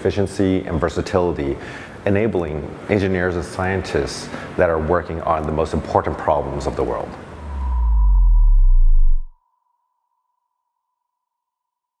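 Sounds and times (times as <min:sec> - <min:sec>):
deep bass swell with falling tones: 0:06.8 - 0:09.4.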